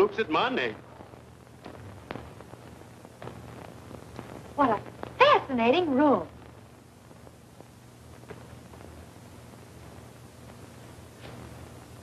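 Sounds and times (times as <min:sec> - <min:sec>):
film soundtrack hum and hiss: 0:00.0 - 0:12.0.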